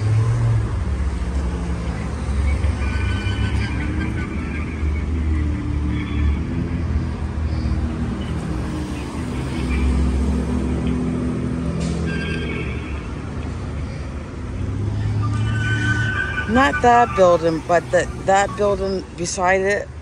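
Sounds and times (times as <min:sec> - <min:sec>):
car engines passing: 0:00.0 - 0:20.0.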